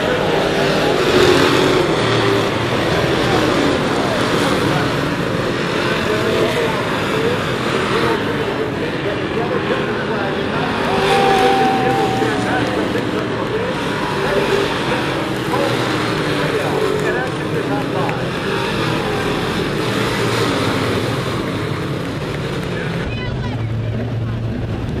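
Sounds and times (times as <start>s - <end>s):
racing car engines passing: 0.0s - 25.0s.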